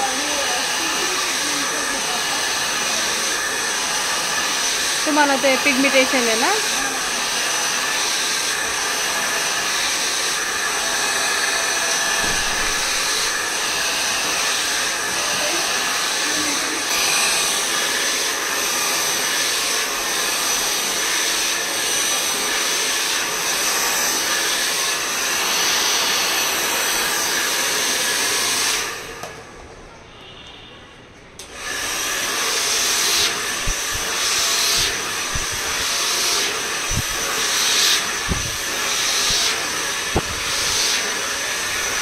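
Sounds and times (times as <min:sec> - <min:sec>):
hair dryer blowing: 0:00.0 - 0:29.5, 0:31.4 - 0:42.0.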